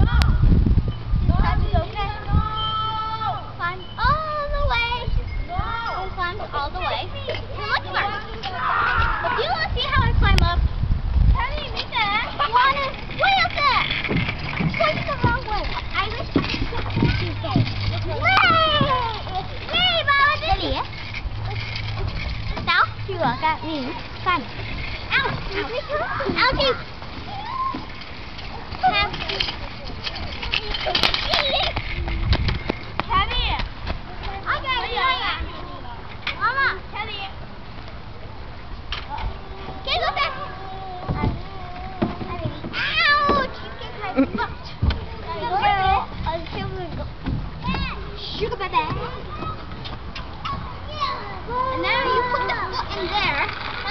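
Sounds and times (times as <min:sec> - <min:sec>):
children shrieking at play: 0:07.6 - 0:10.0, 0:18.1 - 0:20.7, 0:25.1 - 0:29.4, 0:39.1 - 0:46.1, 0:50.4 - 0:53.9
child squealing: 0:27.3 - 0:27.9.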